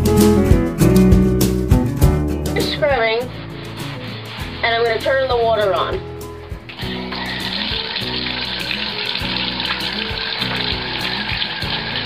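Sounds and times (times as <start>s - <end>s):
background music: 0.0s - 12.0s
water running into bathtub: 2.8s - 12.0s.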